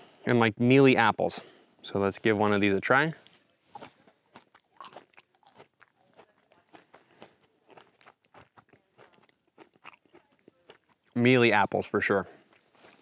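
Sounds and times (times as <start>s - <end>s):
man chewing berry crunches: 3.2s - 11.3s, 12.3s - 13.0s.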